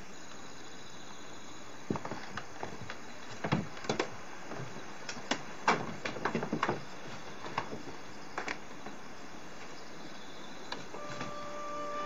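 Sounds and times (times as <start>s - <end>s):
faint insect chirring: 0.0s - 3.5s, 6.5s - 12.0s.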